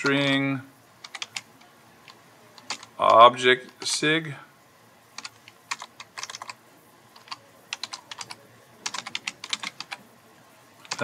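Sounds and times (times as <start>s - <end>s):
typing on computer keyboard: 1.0s - 1.5s, 2.1s - 3.2s, 5.2s - 10.0s.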